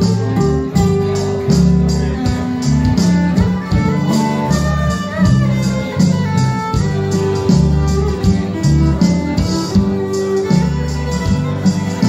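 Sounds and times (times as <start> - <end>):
fiddle melody: 0.0 - 12.0
strummed acoustic guitar: 0.0 - 12.0.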